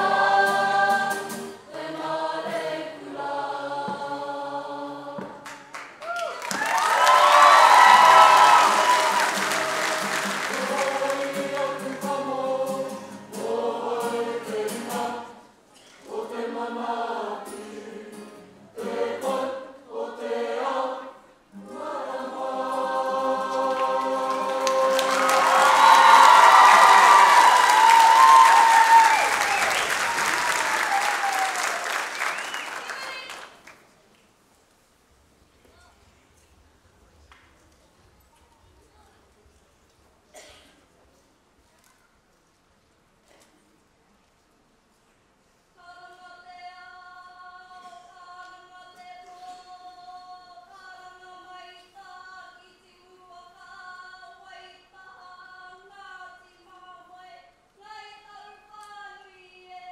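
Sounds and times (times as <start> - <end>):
group singing in unison: 0.0 - 5.7, 7.6 - 28.9
audience applause: 5.4 - 12.2, 23.5 - 33.8.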